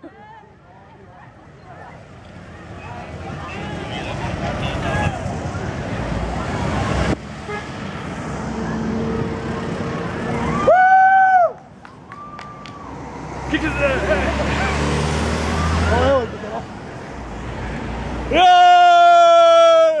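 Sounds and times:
onlookers' voices: 0:00.0 - 0:07.2, 0:08.4 - 0:17.2
vehicles passing: 0:00.0 - 0:20.0.

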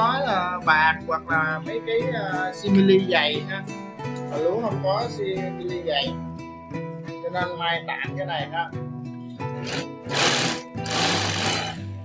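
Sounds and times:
background guitar music: 0:00.0 - 0:12.0
industrial sewing machine running: 0:09.6 - 0:12.0.

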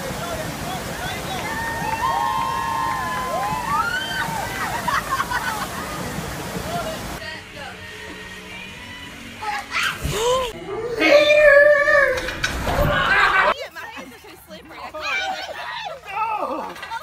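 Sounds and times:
water rushing: 0:00.0 - 0:10.1.

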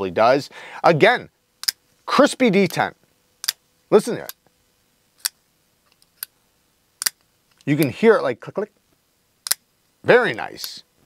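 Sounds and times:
folding knife clicks: 0:09.4 - 0:09.6.

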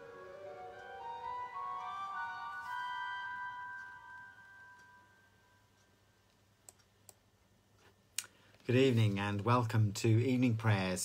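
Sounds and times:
pipe organ chord: 0:00.0 - 0:05.7.

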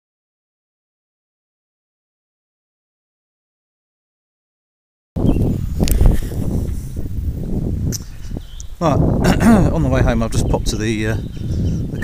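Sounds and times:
wind on microphone: 0:05.2 - 0:12.0.

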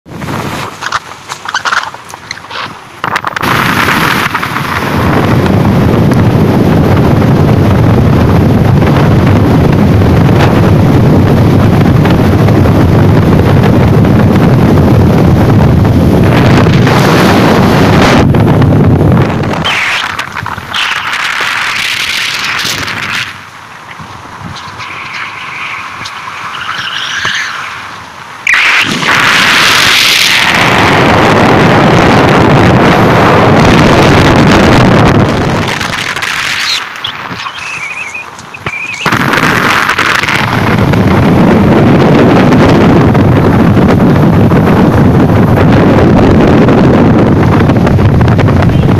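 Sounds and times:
vehicle engine: 0:00.1 - 0:48.9
wind buffeting microphone: 0:00.1 - 0:48.9
tyre noise: 0:00.2 - 0:09.5, 0:15.9 - 0:31.4, 0:33.6 - 0:43.2.

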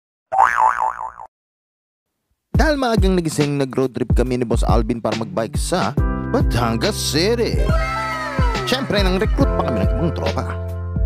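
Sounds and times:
cartoon boing: 0:00.3 - 0:01.3.

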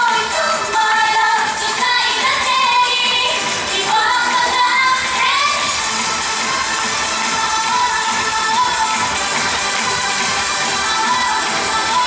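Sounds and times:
pop backing track: 0:00.0 - 0:12.0
women singing pop song: 0:00.0 - 0:12.0.

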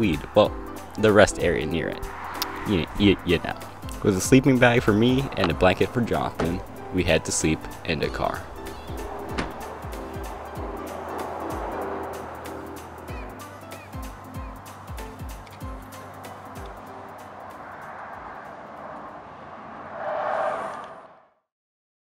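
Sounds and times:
background music with kick drums: 0:08.1 - 0:10.8, 0:13.1 - 0:16.0.

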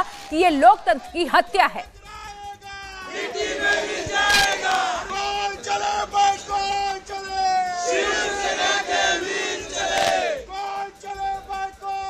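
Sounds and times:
crowd of men shouting slogan: 0:01.8 - 0:12.0.

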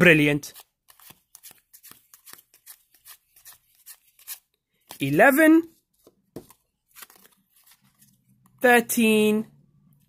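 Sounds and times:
trading cards rustling: 0:00.2 - 0:08.6.

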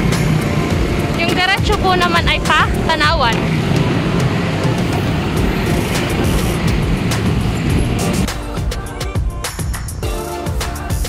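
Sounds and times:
motorcycles passing: 0:00.0 - 0:09.0
background music: 0:00.0 - 0:11.0
street traffic rumble: 0:00.0 - 0:11.0.

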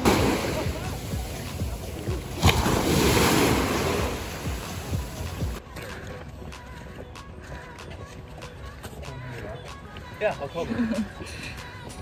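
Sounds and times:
small waves washing on sand: 0:00.0 - 0:05.4.

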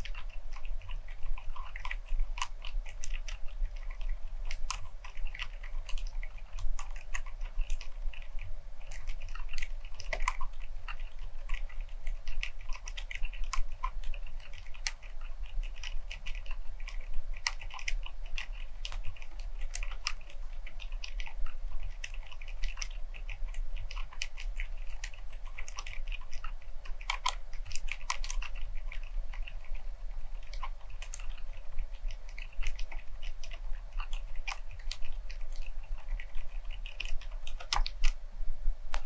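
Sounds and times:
quiet keyboard typing: 0:00.0 - 0:38.2.

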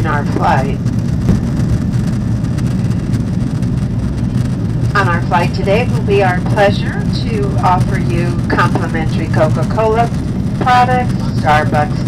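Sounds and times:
jet engines and cabin airflow: 0:00.0 - 0:12.0.

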